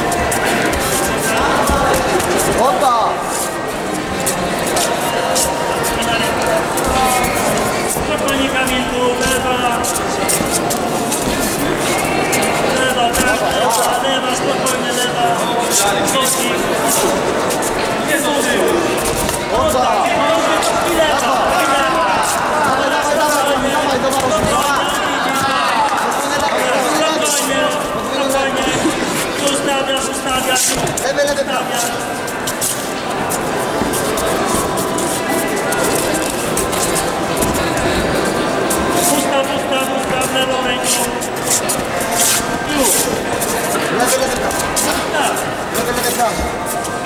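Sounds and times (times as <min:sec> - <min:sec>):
crowd talking and calling out: 0:00.0 - 0:47.0
indistinct voices of spectators: 0:00.0 - 0:47.0.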